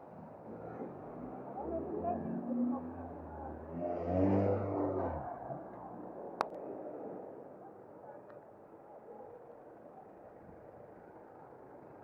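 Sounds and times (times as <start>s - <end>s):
car driving past: 0.8s - 5.7s
passers-by talking: 1.4s - 9.4s.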